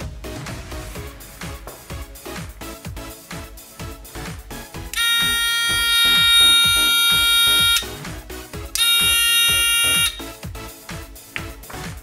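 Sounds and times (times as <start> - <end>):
background music with steady beat: 0.0 - 12.0
electronic buzzer high-pitched tone: 5.0 - 8.0, 8.8 - 10.3.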